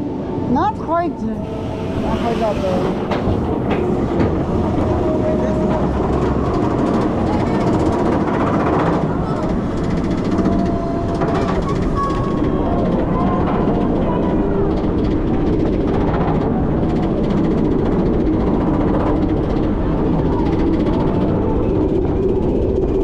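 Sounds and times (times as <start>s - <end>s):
roller coaster lift chain rattling: 1.4s - 23.0s.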